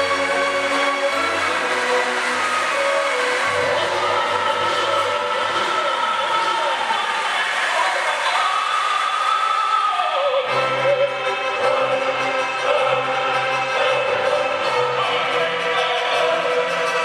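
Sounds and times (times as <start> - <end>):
opera music with orchestra: 0.0 - 17.0
racing car engines: 0.0 - 17.0.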